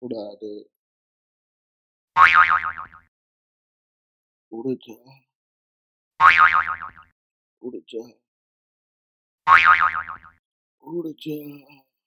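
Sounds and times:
springy wobbling tone: 2.2 - 3.0, 6.2 - 7.0, 9.5 - 10.4.

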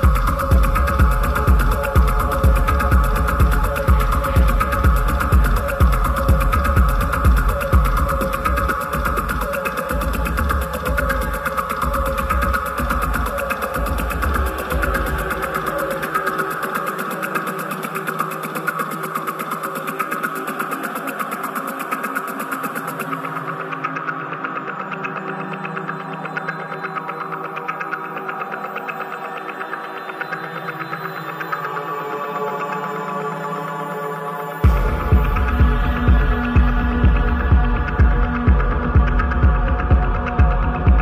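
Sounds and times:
pounding kick drum and bass: 0.0 - 15.4, 34.6 - 41.0
droning synth pads: 0.0 - 41.0.

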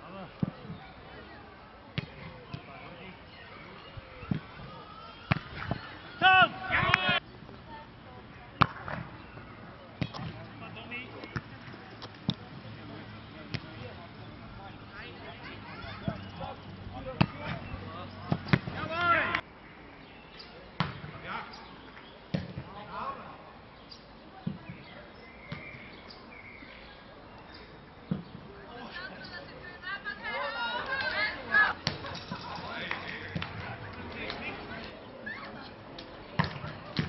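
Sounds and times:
players calling faintly: 0.0 - 19.5
ball being hit with fists: 20.8 - 21.1.

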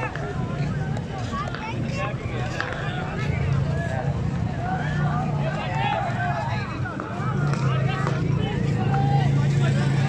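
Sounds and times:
crowd calling and shouting: 0.0 - 10.0.

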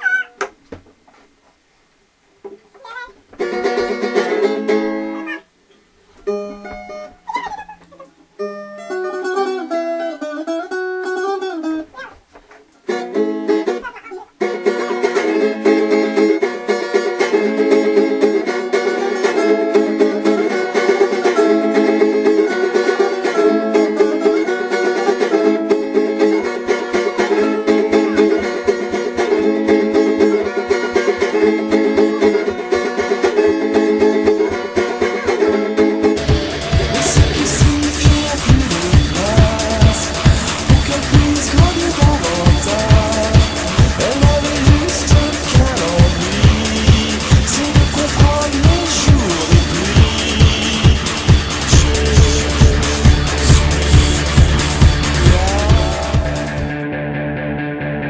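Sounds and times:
acoustic and electric guitars playing: 3.4 - 5.4, 6.2 - 12.0, 12.8 - 58.0.

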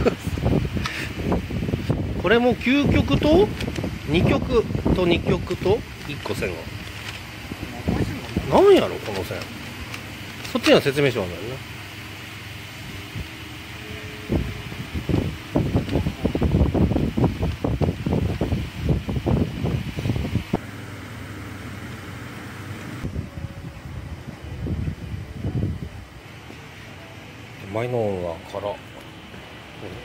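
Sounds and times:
steady background hum: 0.0 - 30.0.

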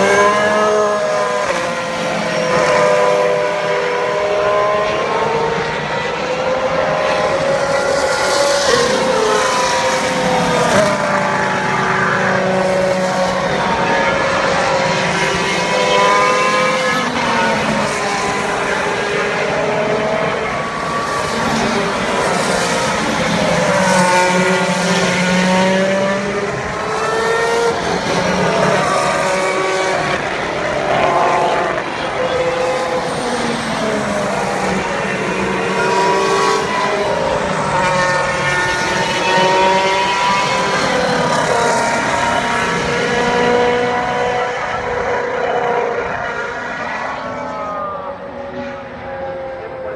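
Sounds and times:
race cars passing: 0.0 - 49.9.

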